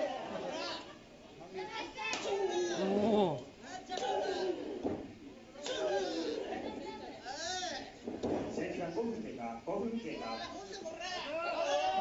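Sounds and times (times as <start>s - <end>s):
crowd chatter and shouts: 0.0s - 8.2s, 10.0s - 12.0s.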